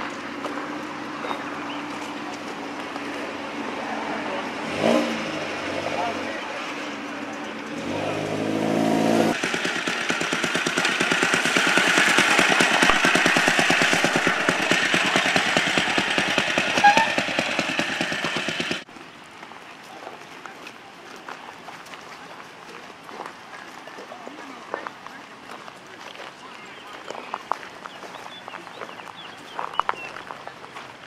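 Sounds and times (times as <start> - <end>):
people talking: 0.0 - 8.5, 10.7 - 18.4, 19.4 - 31.0
motorcycle engine running: 0.0 - 18.9.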